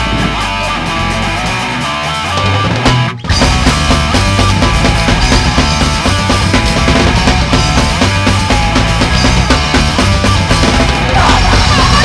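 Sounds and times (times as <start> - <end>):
punk rock band music: 0.0 - 12.0.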